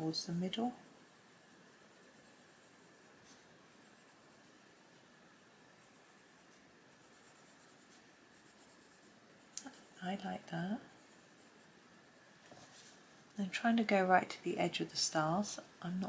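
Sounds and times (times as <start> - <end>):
pencil scratching on paper: 0.0 - 14.1.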